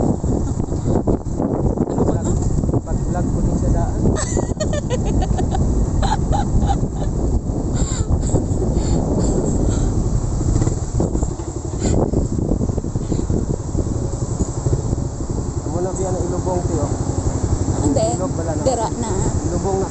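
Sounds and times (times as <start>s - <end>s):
motorcycle engine running: 0.0s - 19.9s
wind on microphone: 0.0s - 19.9s.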